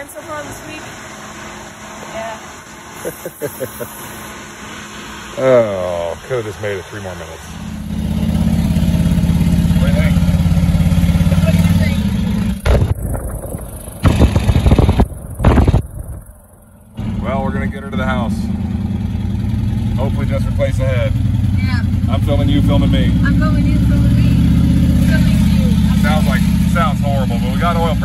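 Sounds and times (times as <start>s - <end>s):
voices: 0.0s - 1.0s, 5.3s - 7.6s, 9.6s - 12.6s, 20.0s - 28.0s
engine running: 0.0s - 28.0s
loud engine bursts: 0.0s - 28.0s.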